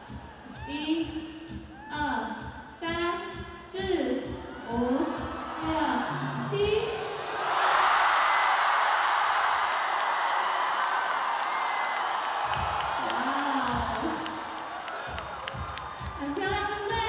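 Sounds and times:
crowd cheering: 0:04.4 - 0:17.0.

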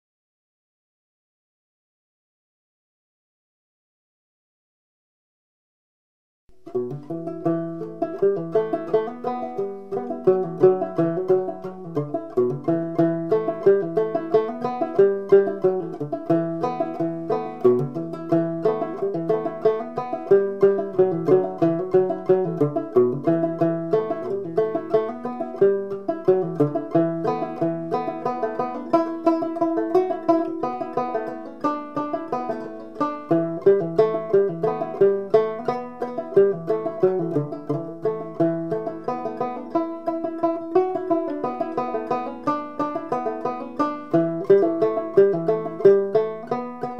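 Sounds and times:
banjo played clawhammer style: 0:06.5 - 0:46.9.

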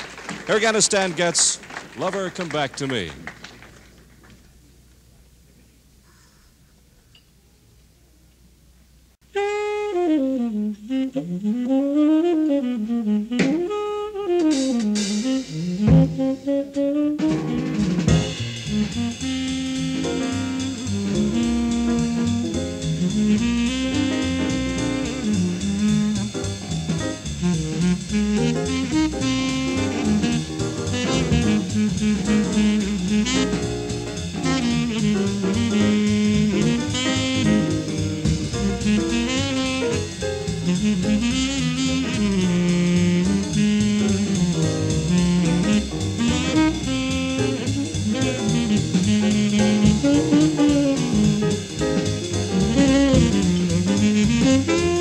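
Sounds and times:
tenor saxophone melody: 0:09.2 - 0:55.0
jazz quartet playing: 0:09.3 - 0:55.0.

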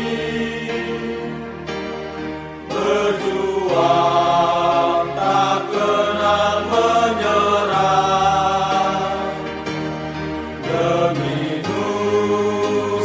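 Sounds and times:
choir singing slow hymn: 0:00.0 - 0:13.0.

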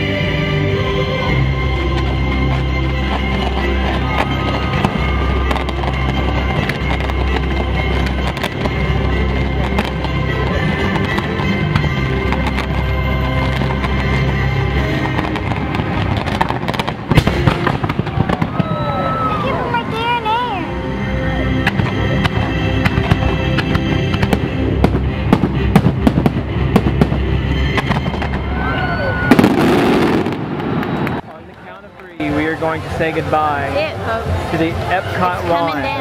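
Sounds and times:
orchestral music: 0:00.0 - 0:36.0
fireworks bangs and crackles: 0:01.3 - 0:20.5, 0:21.5 - 0:36.0.

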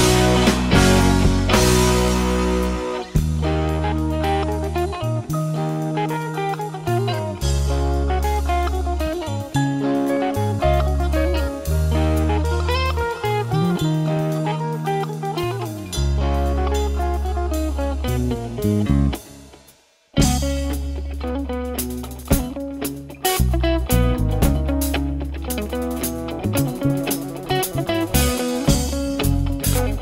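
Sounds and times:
rock music with electric guitar: 0:00.0 - 0:30.0.

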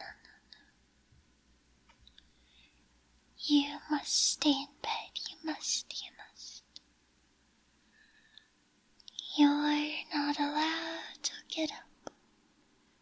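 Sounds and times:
woman whispering: 0:00.0 - 0:00.7, 0:03.4 - 0:06.7, 0:09.1 - 0:12.1.

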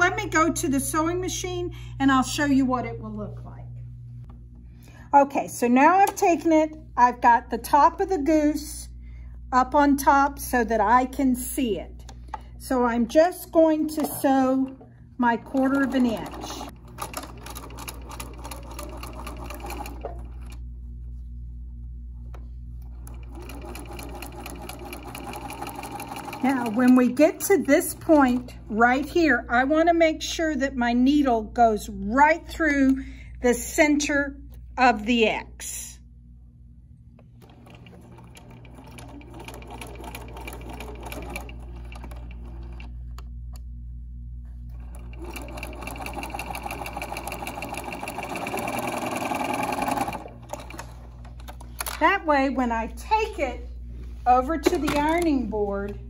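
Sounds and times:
sewing machine stitching: 0:14.0 - 0:20.6, 0:22.9 - 0:28.7, 0:37.4 - 0:42.9, 0:44.7 - 0:52.0.

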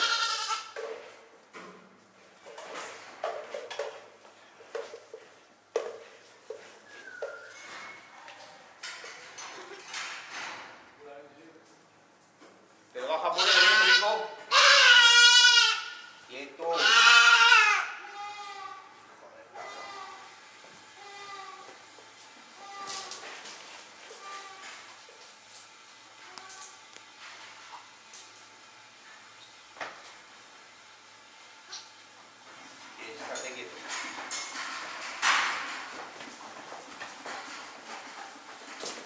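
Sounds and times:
young goat bleating: 0:00.0 - 0:00.8, 0:13.3 - 0:16.1, 0:16.7 - 0:18.9, 0:19.5 - 0:20.3, 0:21.0 - 0:21.7, 0:22.6 - 0:23.2.

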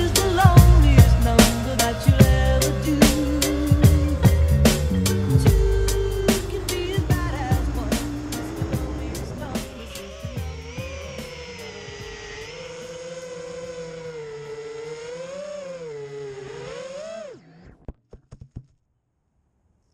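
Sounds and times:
music: 0:00.0 - 0:12.9
quadcopter motors whining: 0:00.0 - 0:17.8.

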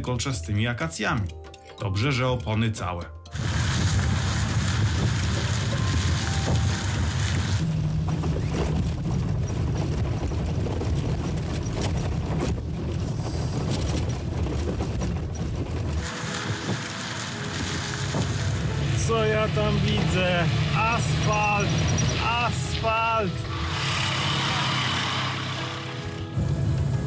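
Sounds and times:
car engine and tyres on gravel: 0:03.3 - 0:27.0.

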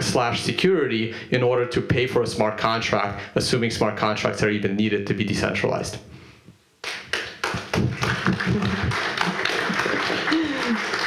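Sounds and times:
audience applauding: 0:06.8 - 0:11.0.

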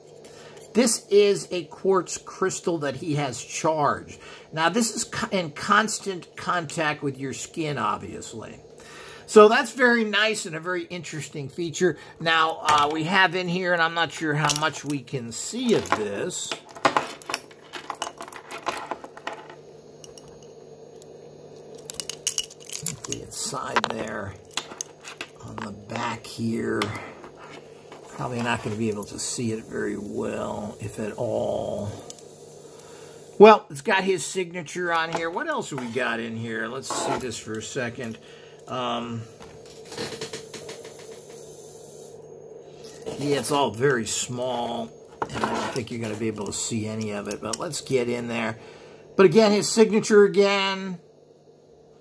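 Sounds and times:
faint steady hum: 0:00.0 - 0:52.0.

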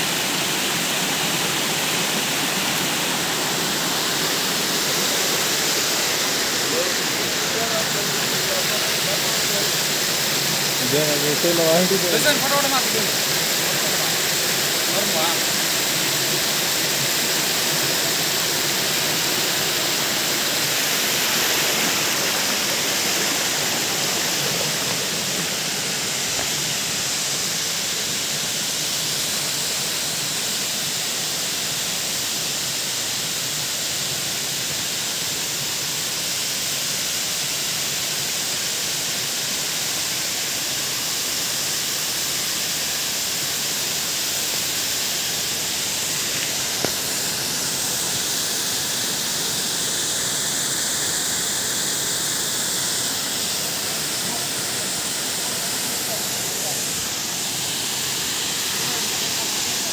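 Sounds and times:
waterfall rushing: 0:00.0 - 0:59.9.

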